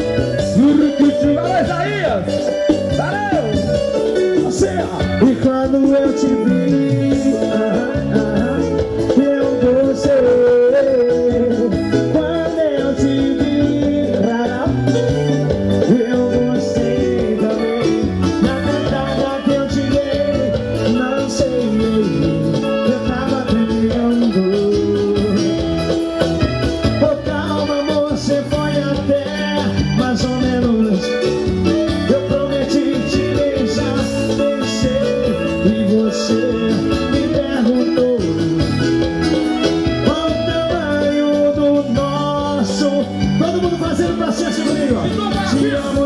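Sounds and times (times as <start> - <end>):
loud live band music: 0.0 - 46.0.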